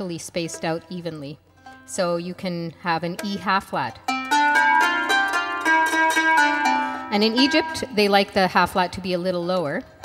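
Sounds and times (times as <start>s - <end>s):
plucked zither notes ringing: 3.1s - 8.4s.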